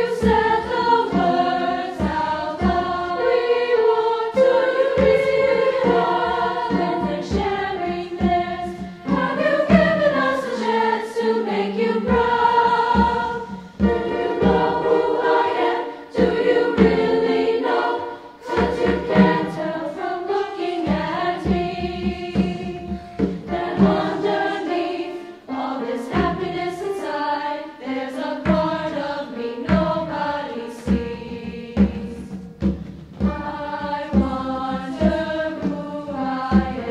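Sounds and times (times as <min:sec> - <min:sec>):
piano accompaniment: 0:00.0 - 0:36.9
women's choir singing in harmony: 0:00.0 - 0:36.9.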